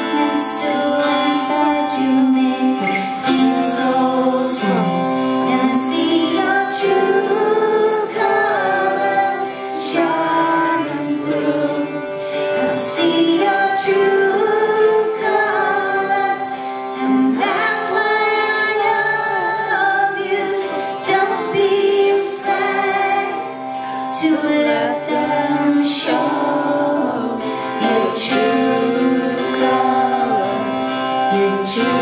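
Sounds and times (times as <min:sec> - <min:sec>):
harmonica long wavering notes: 0:00.0 - 0:32.0.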